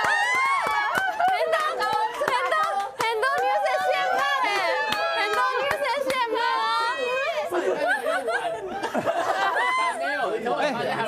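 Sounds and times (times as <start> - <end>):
several voices talking: 1.5 - 11.0.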